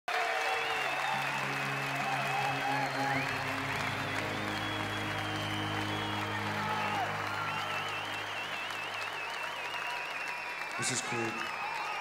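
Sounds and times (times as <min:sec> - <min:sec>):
crowd applauding and cheering: 0:00.0 - 0:12.0
whistles: 0:00.4 - 0:12.0
sustained low chords: 0:01.2 - 0:09.1.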